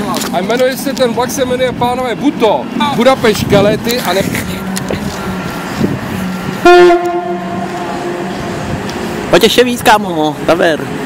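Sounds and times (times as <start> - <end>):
steady low hum: 4.5 - 9.3
train horn: 6.3 - 8.7.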